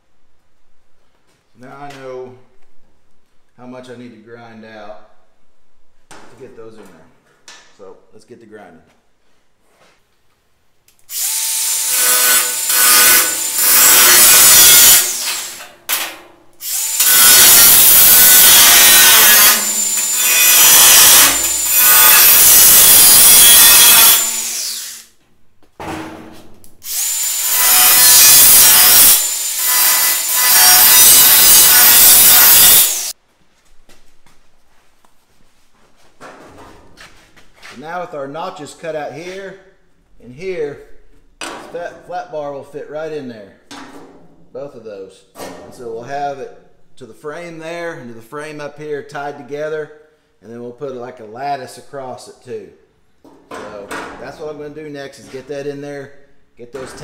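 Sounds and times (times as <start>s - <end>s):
angle grinder cutting steel sheet: 11.1s - 15.8s, 16.6s - 25.1s, 26.8s - 33.2s.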